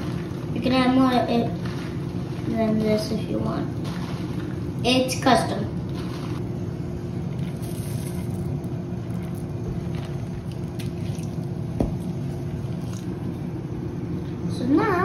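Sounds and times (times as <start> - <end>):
low hum with faint tone: 0.0 - 15.0.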